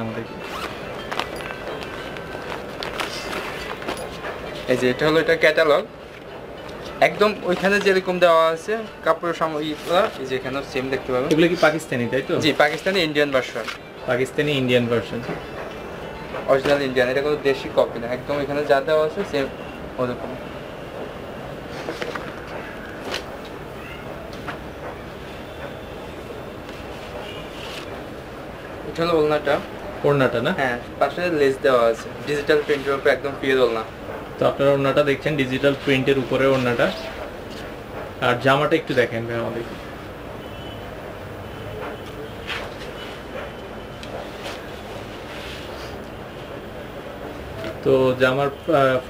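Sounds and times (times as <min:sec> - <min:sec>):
fabric rustling: 0:00.0 - 0:05.4, 0:08.8 - 0:14.3, 0:26.5 - 0:28.2, 0:32.2 - 0:33.3, 0:44.2 - 0:46.0
shop background noise: 0:00.0 - 0:49.0
plastic packaging crinkling: 0:00.4 - 0:04.1.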